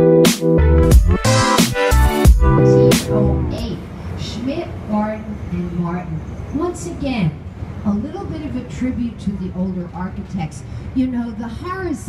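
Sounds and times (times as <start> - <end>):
woman talking: 2.7 - 12.0.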